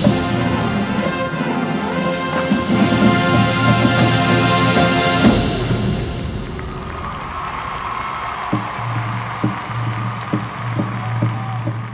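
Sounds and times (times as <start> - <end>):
marching band chord: 0.0 - 10.9
crowd applause and cheering: 0.0 - 11.9.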